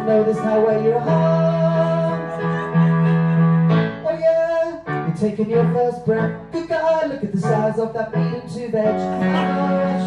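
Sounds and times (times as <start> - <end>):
electronic keyboard chords: 0.0 - 10.0.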